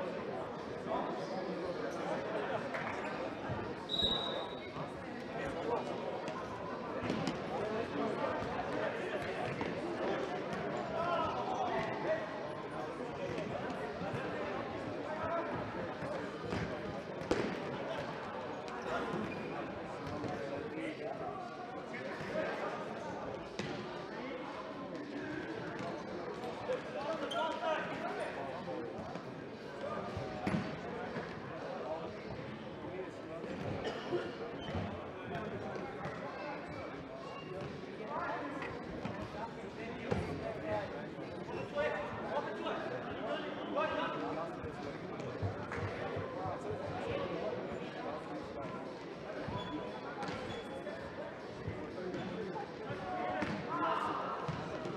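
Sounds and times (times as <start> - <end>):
players shouting and chatting: 0.0 - 54.9
referee's whistle: 3.9 - 4.7.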